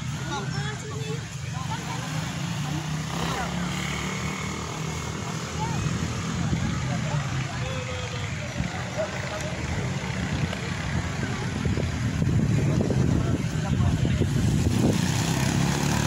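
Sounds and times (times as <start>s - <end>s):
faint distant voices: 0.0s - 16.0s
wind buffeting microphone: 8.3s - 16.0s.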